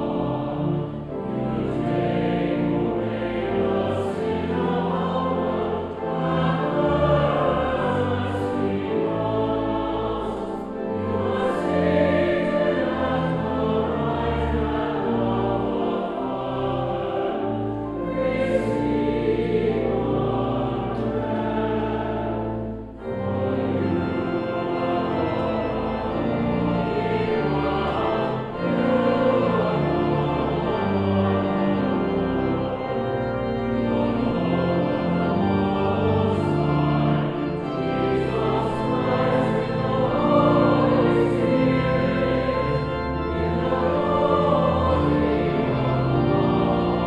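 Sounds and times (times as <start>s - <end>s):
mixed choir singing: 0.0s - 47.0s
pipe organ: 0.0s - 47.0s.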